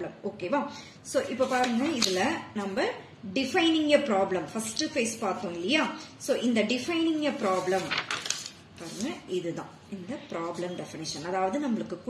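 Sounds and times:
paper rustling: 1.3 - 2.4, 7.2 - 9.3.

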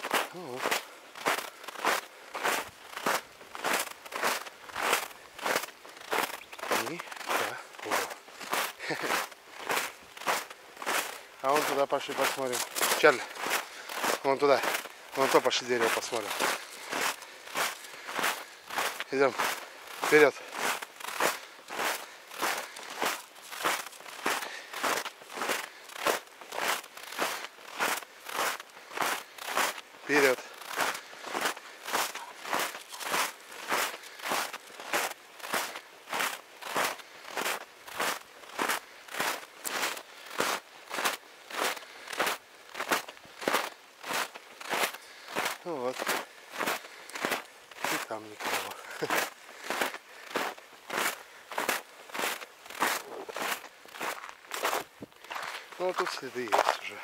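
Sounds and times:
footsteps crunching through snow: 0.0 - 57.0.

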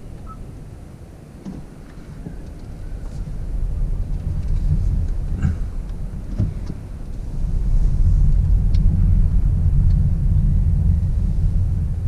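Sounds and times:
road and tyre noise in car cabin: 0.0 - 12.0.

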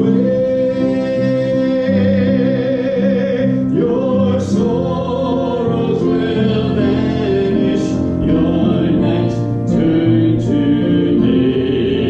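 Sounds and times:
keyboard accompaniment: 0.0 - 12.0
man singing a hymn: 0.0 - 12.0.

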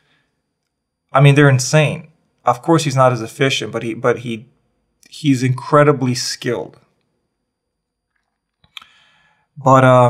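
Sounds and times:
mouth click: 8.6 - 9.0
man drawing breath: 8.7 - 9.5.

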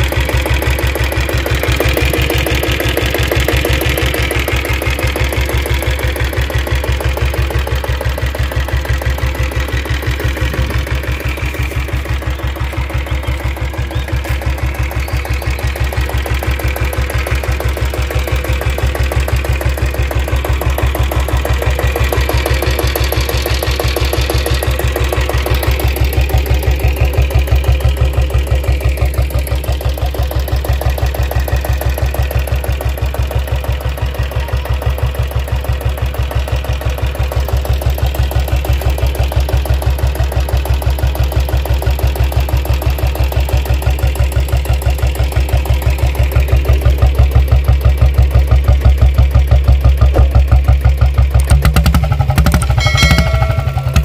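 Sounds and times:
diesel engine idling with knock: 0.0 - 54.0.

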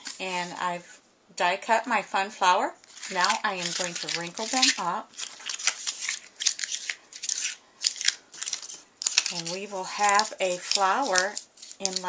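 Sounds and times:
paper crumpling: 2.8 - 12.0.

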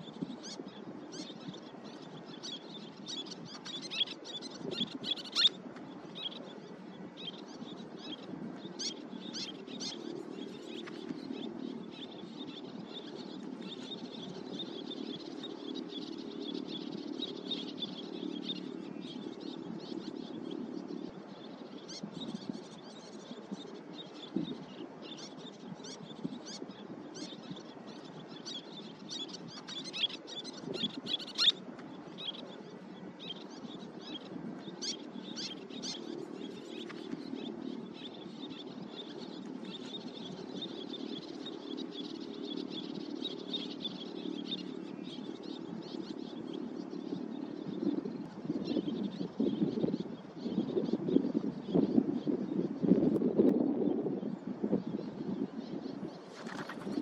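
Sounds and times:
birds chirping: 0.0 - 57.0.

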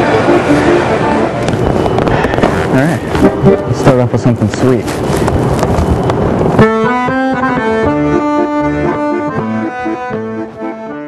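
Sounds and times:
piano accordion playing: 0.0 - 4.2, 6.5 - 11.0.

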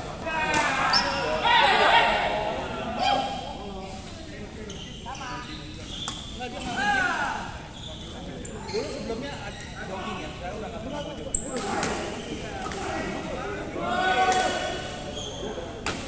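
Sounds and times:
shoes squeaking on court floor: 0.9 - 1.4, 3.8 - 6.7, 7.7 - 11.5, 15.0 - 15.8.

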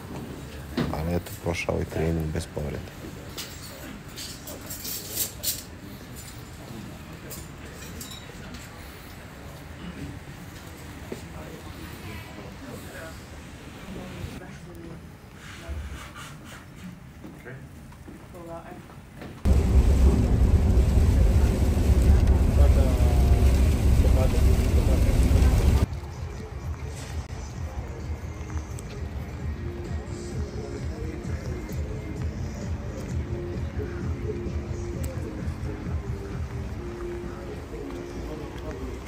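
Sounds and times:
cutlery and crockery clinking: 3.3 - 6.7, 7.3 - 8.8
bus engine and tyres rumbling: 19.5 - 25.9
faint voices: 19.5 - 39.0.

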